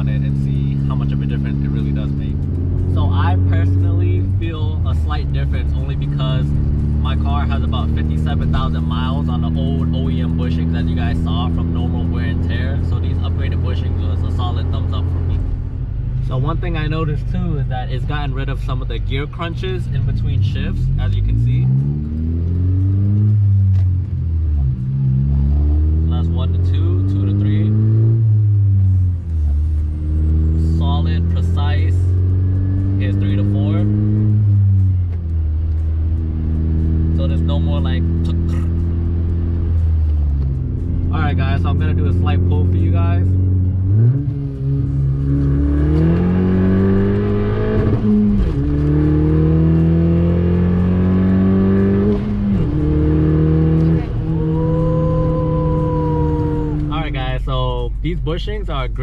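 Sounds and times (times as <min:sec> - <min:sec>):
car engine accelerating: 0:00.0 - 0:59.0.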